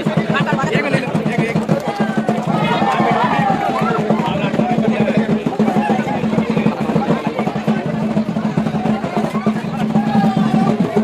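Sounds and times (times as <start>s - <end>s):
crowd voices and shouts: 0.0s - 11.0s
fast drumbeat: 0.0s - 11.0s.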